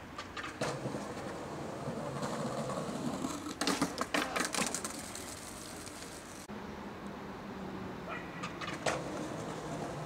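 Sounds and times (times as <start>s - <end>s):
skateboard wheels rolling on stone: 0.0s - 6.5s, 8.4s - 10.0s
skateboard clacking against stone: 3.2s - 6.2s, 8.4s - 10.0s.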